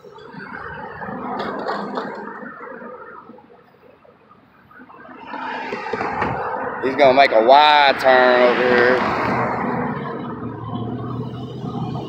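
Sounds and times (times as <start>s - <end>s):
car approaching and passing: 0.0s - 12.0s
vehicles passing on road: 0.0s - 12.0s.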